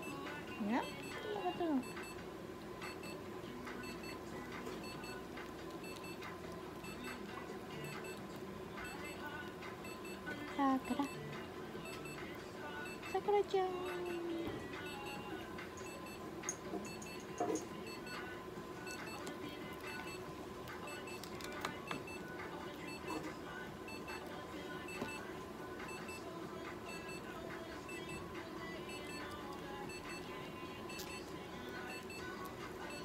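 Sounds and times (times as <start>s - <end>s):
short high beeps: 12.8s - 13.2s.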